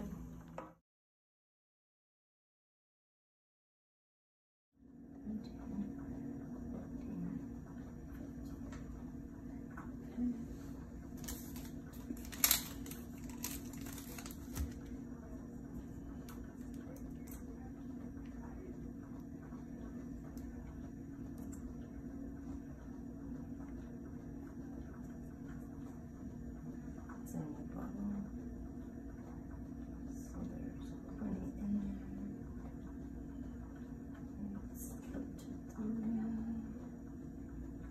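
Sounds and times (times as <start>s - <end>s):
low room hum: 0.0s - 0.8s, 4.8s - 37.9s
plastic packaging crinkling: 11.2s - 14.9s.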